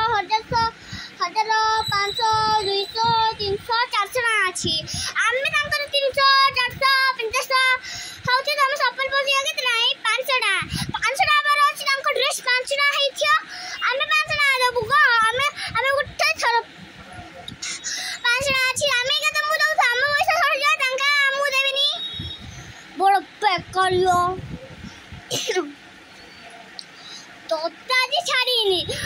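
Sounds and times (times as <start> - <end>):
girl singing: 0.0 - 16.2
girl's breathy voice: 0.7 - 1.2, 4.8 - 5.2, 7.8 - 8.4, 10.6 - 11.0, 13.4 - 13.9, 17.6 - 18.3, 28.8 - 29.0.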